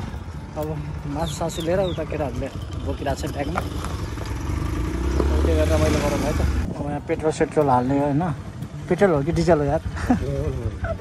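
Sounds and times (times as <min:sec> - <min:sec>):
motorcycle engine revving: 0:01.3 - 0:06.7.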